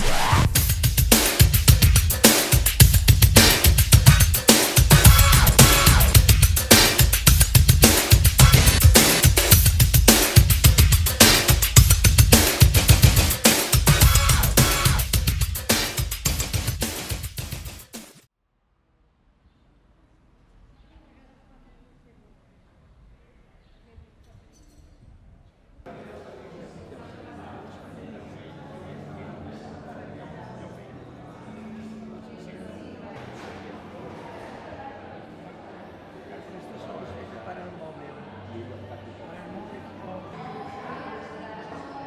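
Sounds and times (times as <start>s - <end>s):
loud music with heavy drum beat: 0.0s - 18.3s
crowd chatter in echoing hall: 1.1s - 14.9s, 20.2s - 42.0s.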